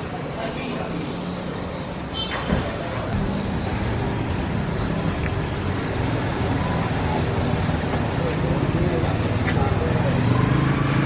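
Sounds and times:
street traffic: 0.0 - 11.0
vehicle engine humming nearby: 0.0 - 11.0.

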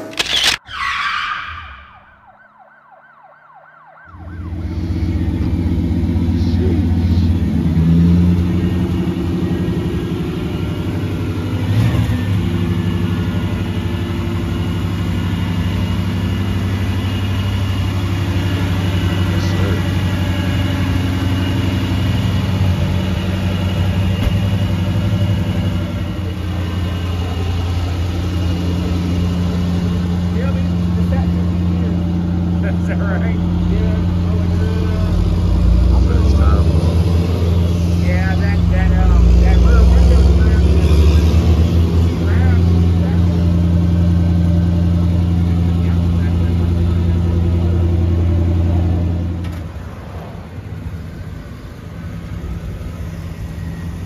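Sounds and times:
car engine idling: 2.3 - 54.0.

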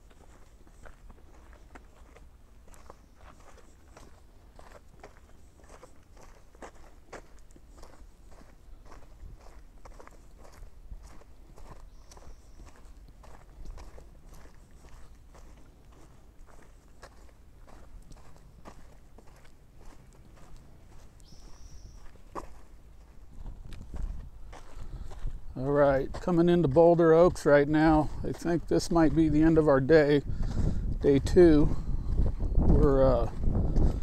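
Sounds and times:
footsteps on dirt trail: 0.0 - 34.0.

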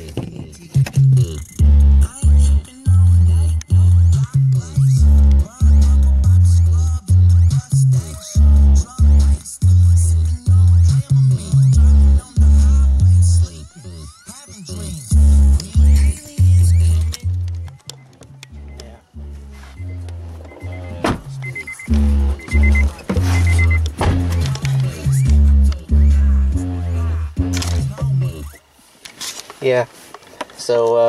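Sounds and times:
bass-heavy music with vocal: 0.0 - 28.6.

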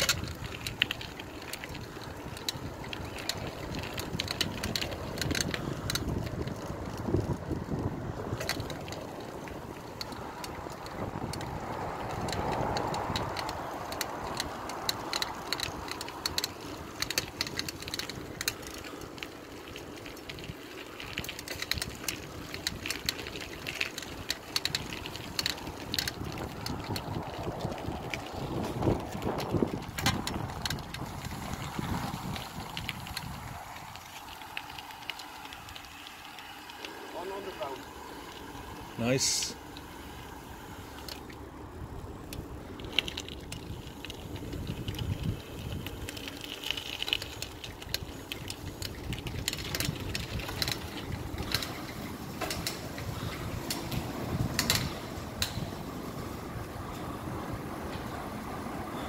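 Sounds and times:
bicycle tyres rolling on asphalt: 0.0 - 59.0
bike clicks and rattles: 0.0 - 59.0.

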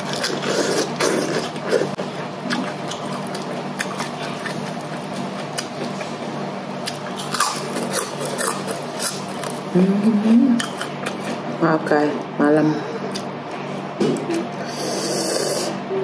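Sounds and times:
wet chewing and crunching: 0.0 - 9.7, 10.6 - 11.5, 13.1 - 14.6
steady low hum: 0.0 - 16.0.

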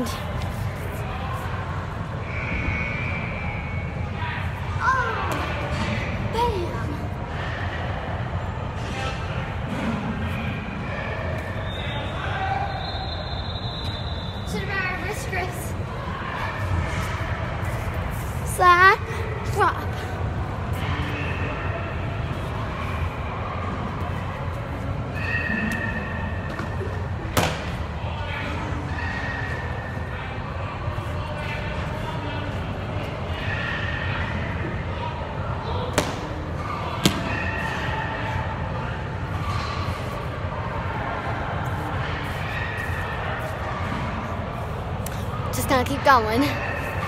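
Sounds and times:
low rumble of sports hall: 0.0 - 47.0.

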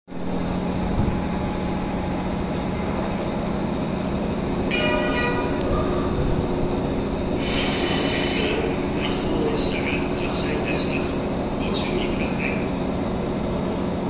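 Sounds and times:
electric train rumbling: 0.1 - 14.0
high ringing sound: 3.9 - 9.7
high hiss-like noise: 4.7 - 12.8.

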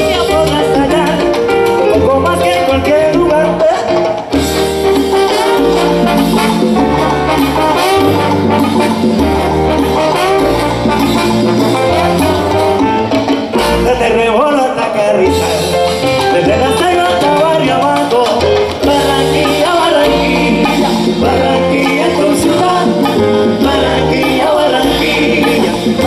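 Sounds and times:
horn section melody: 0.0 - 26.0
salsa band playing: 0.0 - 26.0.

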